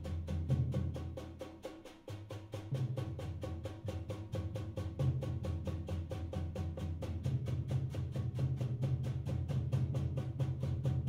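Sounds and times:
drums playing fast pulse: 0:00.0 - 0:11.0
low drum resonance: 0:00.0 - 0:11.0.

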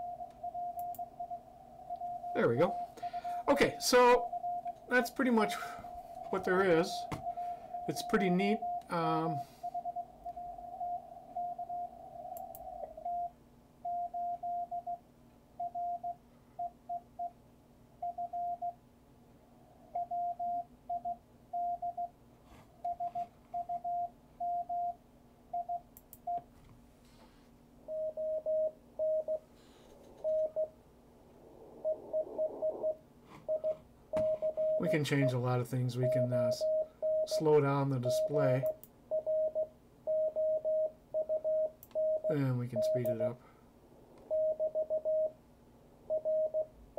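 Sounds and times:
morse code beeps: 0:00.0 - 0:13.3, 0:13.9 - 0:15.0, 0:15.6 - 0:17.4, 0:18.0 - 0:18.8, 0:20.0 - 0:22.1, 0:22.8 - 0:26.4, 0:27.9 - 0:30.8, 0:31.8 - 0:43.3, 0:44.2 - 0:45.4, 0:46.1 - 0:46.7
lower pitched morse keying: 0:00.0 - 0:13.5, 0:27.9 - 0:36.7, 0:41.8 - 0:46.9.

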